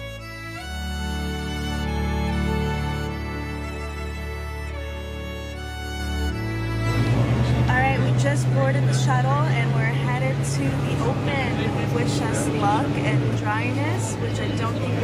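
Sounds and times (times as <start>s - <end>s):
bus engine drone: 0.0s - 15.0s
voices: 7.0s - 15.0s.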